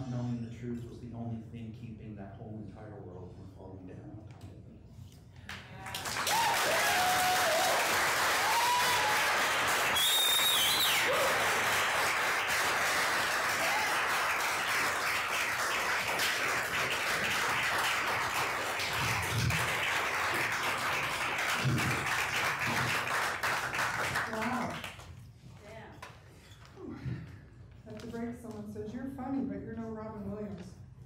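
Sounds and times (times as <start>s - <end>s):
whoops: 5.8s - 11.8s, 13.4s - 14.3s
audience applause: 5.8s - 25.0s
high whistle: 9.8s - 11.3s.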